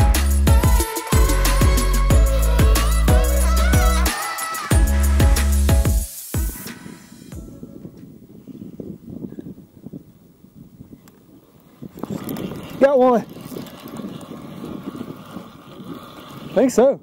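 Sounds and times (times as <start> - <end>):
low rumbling wind: 7.3 - 17.0
water noise: 11.4 - 16.6.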